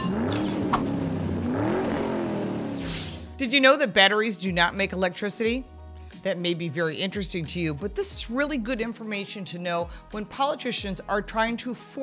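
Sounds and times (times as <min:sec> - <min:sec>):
car engine revving: 0:00.0 - 0:03.4
whoosh: 0:00.3 - 0:03.4.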